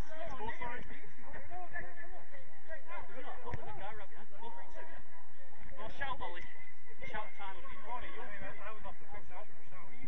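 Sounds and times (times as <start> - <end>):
men talking and calling out: 0.0 - 10.0.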